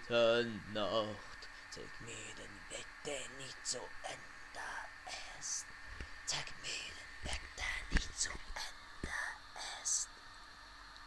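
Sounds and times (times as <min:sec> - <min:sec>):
faint room hiss: 0:00.0 - 0:11.0
man whispering: 0:01.2 - 0:05.7.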